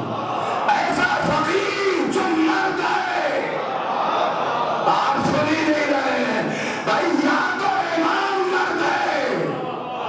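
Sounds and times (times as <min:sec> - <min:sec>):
crowd of voices: 0:00.0 - 0:10.0.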